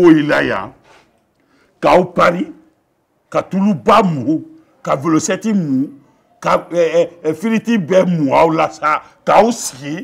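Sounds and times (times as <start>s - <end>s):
man talking: 0.0s - 0.8s, 1.8s - 2.7s, 3.3s - 10.0s.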